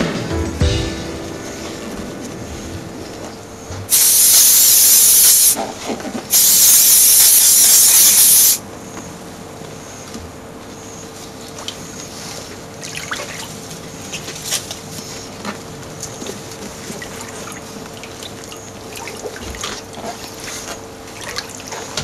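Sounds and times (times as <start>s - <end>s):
aerosol spray can hissing: 3.9s - 5.6s, 6.3s - 8.6s.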